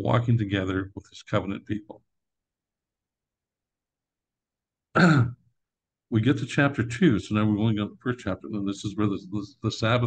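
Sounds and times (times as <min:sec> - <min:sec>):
man's short vocal sound: 0:05.0 - 0:05.4.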